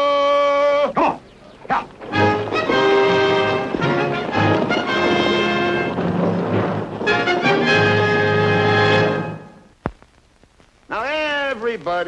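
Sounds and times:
short shouted calls: 0.0 - 3.7.

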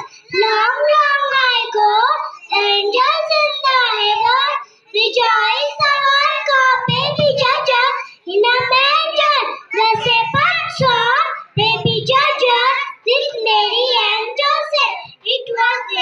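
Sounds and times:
children singing into a microphone: 0.0 - 16.0.

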